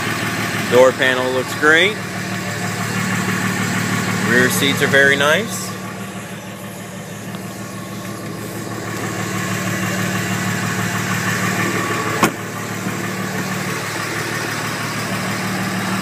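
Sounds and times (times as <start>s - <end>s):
diesel engine idling: 0.0s - 16.0s.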